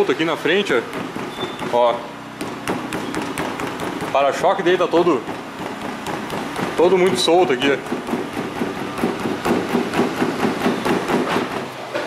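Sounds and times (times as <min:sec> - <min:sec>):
plastic bumper knocking and rattling: 0:00.9 - 0:04.5.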